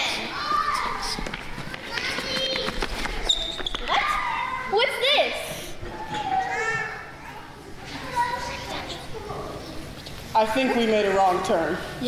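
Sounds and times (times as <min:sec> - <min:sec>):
children calling and shouting: 0:00.0 - 0:12.0.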